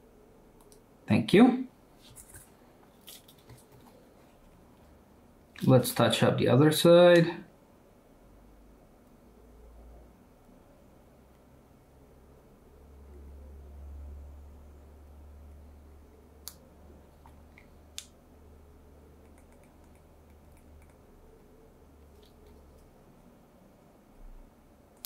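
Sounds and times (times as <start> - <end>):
low hum: 8.3 - 24.9.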